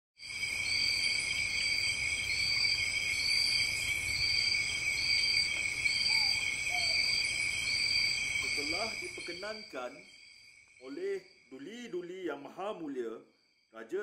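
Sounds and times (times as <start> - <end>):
crickets trilling: 0.2 - 14.0
cricket calling short repeated phrase: 8.4 - 13.2.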